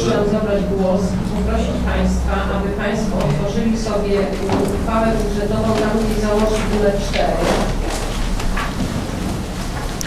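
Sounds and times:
low hum from sound system: 0.0s - 10.0s
paper rustling: 4.4s - 10.0s.

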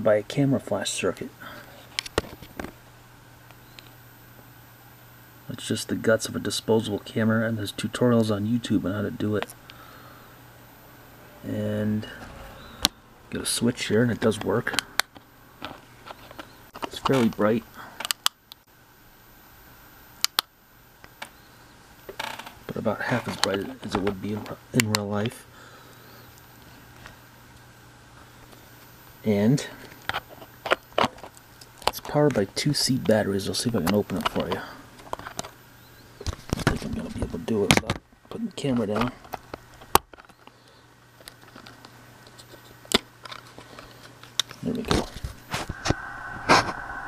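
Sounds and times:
faint high whine: 0.0s - 30.0s, 32.0s - 37.7s, 44.8s - 47.0s
faint low hum: 0.0s - 39.4s, 44.7s - 47.0s.

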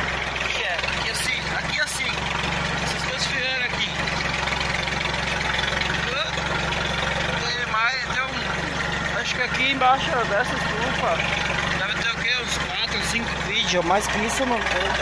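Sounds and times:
tractor diesel engine under load: 0.0s - 15.0s.

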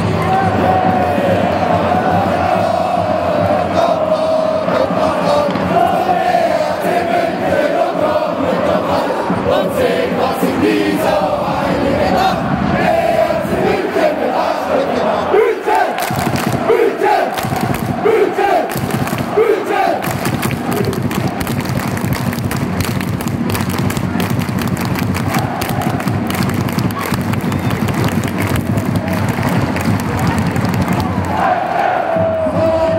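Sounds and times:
crowd chanting: 0.0s - 22.0s, 25.1s - 27.7s, 29.0s - 32.9s
crowd roar: 0.0s - 32.9s.

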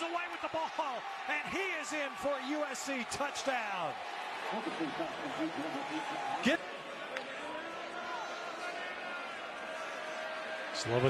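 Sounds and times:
stadium crowd: 0.0s - 11.0s
commentators talking and chuckling: 4.4s - 6.8s.

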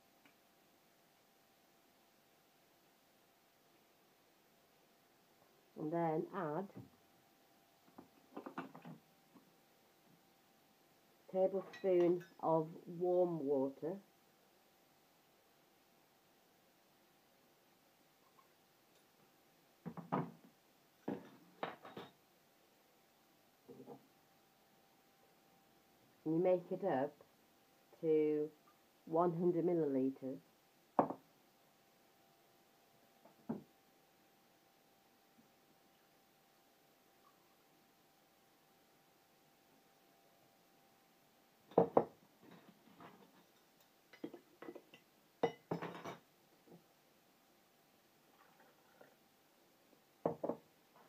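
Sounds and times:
glassware and utensils clinking: 21.1s - 22.2s, 43.4s - 46.2s.

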